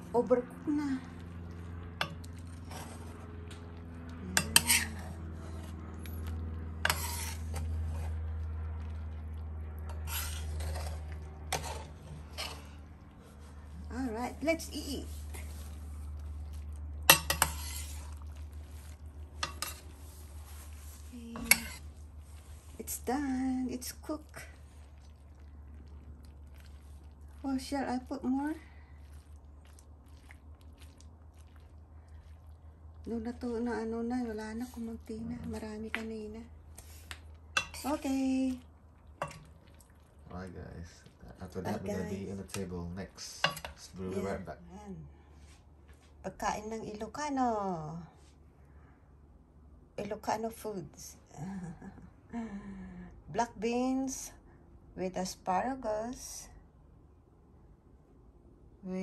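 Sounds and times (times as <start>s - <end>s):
steady low hum: 0.0s - 59.0s
spoon stirring beans in a pot: 0.2s - 44.4s
metal ladle scraping pot: 4.3s - 8.4s, 9.8s - 13.0s, 17.0s - 23.2s, 36.8s - 38.4s, 39.2s - 39.6s.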